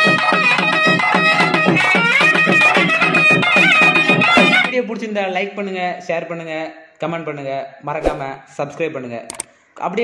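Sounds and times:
person talking: 4.6 - 10.0.

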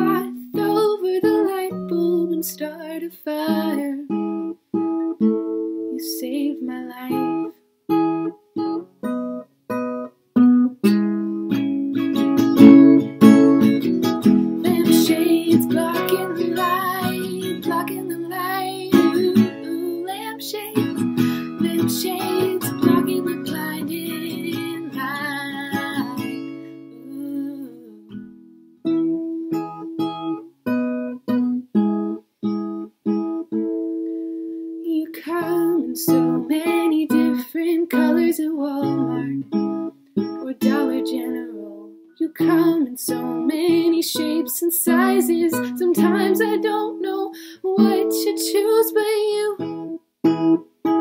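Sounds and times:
acoustic guitar strumming: 3.5 - 6.2, 7.1 - 51.0.

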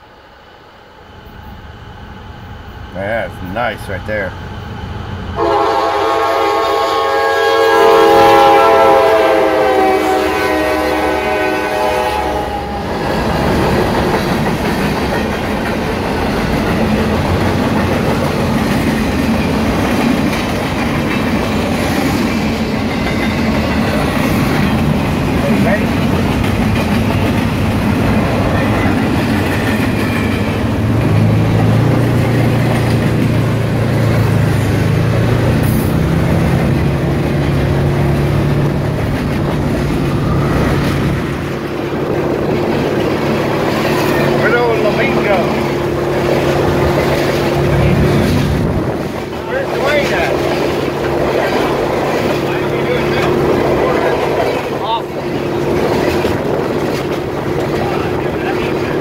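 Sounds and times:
freight cars rumbling on rails: 1.1 - 59.0
locomotive air horn: 5.4 - 12.9.

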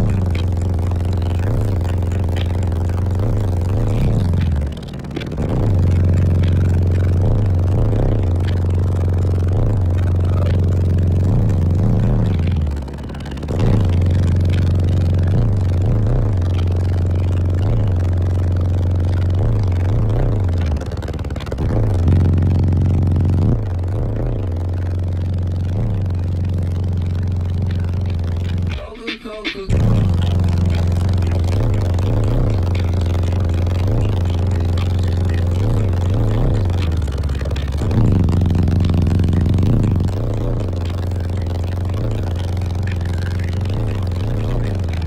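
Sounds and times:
bass-heavy music through subwoofers: 0.0 - 45.0.

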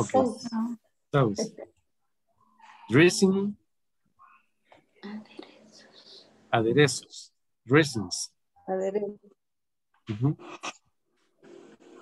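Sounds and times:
soft whispering voice: 4.2 - 6.9.

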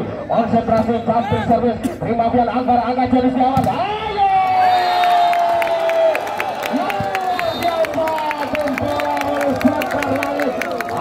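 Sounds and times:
crowd cheering: 4.3 - 11.0.

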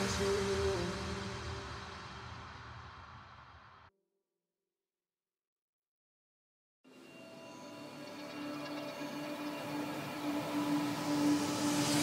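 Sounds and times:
noise sweep: 0.0 - 3.9, 9.2 - 12.0.

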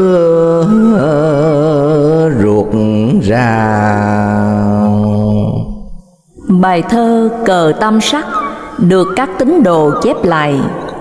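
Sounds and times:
man chanting a long low note: 0.0 - 5.8.

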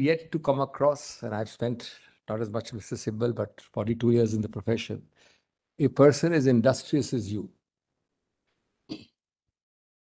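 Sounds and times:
man clearing throat: 8.9 - 9.2.

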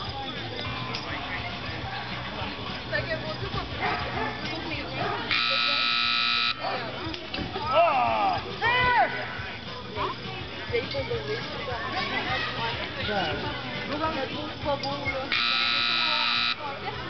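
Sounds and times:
electronic timer buzzer: 5.3 - 6.6, 15.3 - 16.6.

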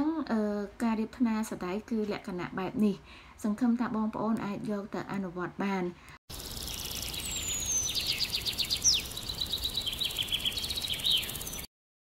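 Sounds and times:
background hiss: 6.0 - 11.6
songbirds singing: 6.3 - 11.7.

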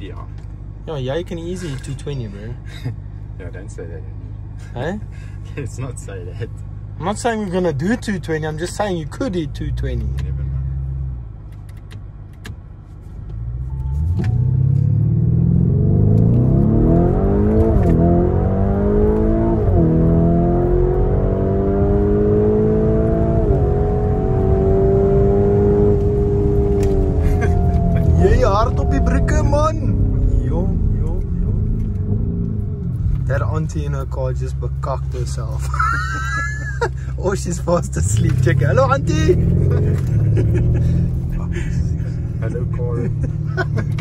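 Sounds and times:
car engine accelerating: 0.0 - 44.0.

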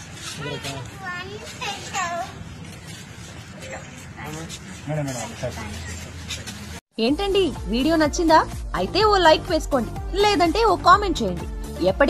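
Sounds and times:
adult chatter: 0.0 - 6.8.

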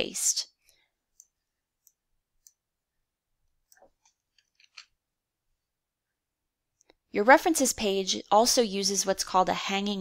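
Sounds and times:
computer mouse clicks: 0.6 - 2.6.

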